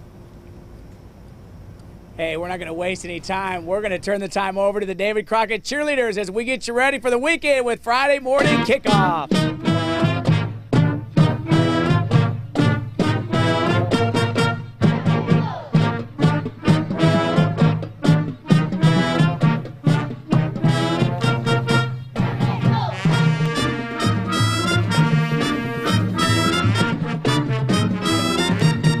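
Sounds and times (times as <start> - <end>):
brass band playing upbeat tune: 8.4 - 29.0
steady drum beat: 8.4 - 29.0.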